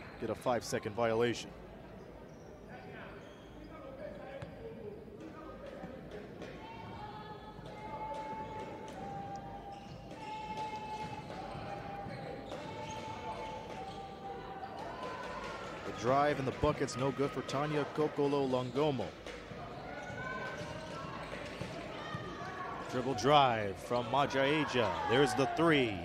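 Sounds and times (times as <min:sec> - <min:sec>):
arena crowd: 0:00.0 - 0:26.0.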